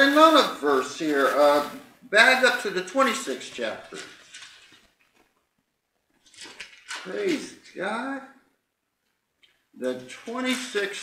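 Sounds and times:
book pages rustling: 0.0s - 7.8s.

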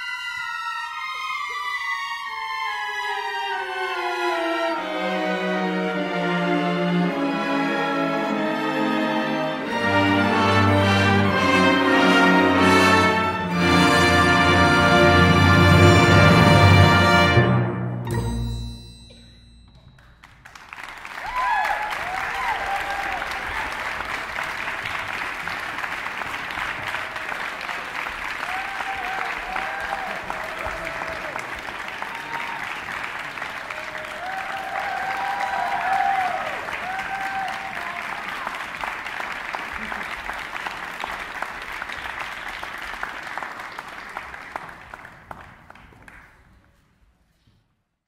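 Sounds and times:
audience applauding: 20.0s - 46.6s
crowd cheering: 20.5s - 45.1s.

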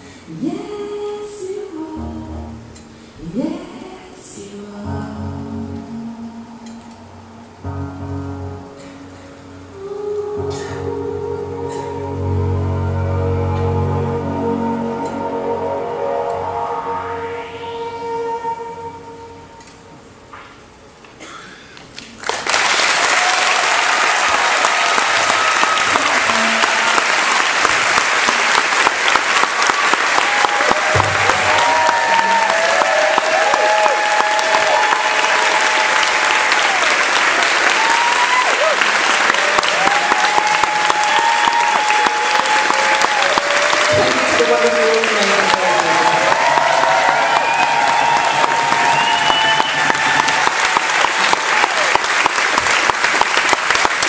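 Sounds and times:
held pitched tones: 4.9s - 20.2s
audience applause and cheering: 21.9s - 54.0s.

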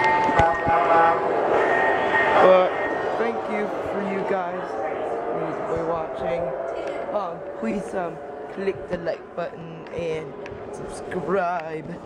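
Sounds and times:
people chattering: 0.0s - 12.0s
steady tone: 0.0s - 12.0s.

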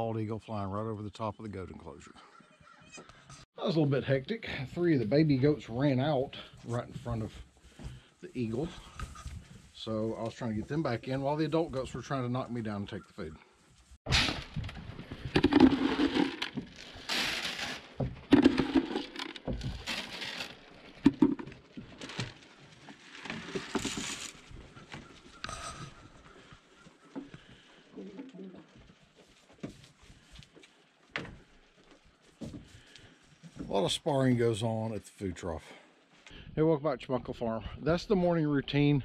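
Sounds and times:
grain rattling into plastic trough: 14.1s - 24.4s.

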